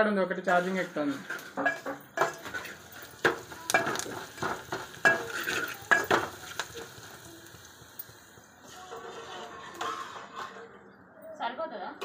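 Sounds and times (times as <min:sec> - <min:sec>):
food sizzling in oil: 0:00.4 - 0:10.6
metal spoon scraping a pot: 0:00.5 - 0:07.2, 0:08.0 - 0:11.0
spoon knocking on pot: 0:01.6 - 0:07.1.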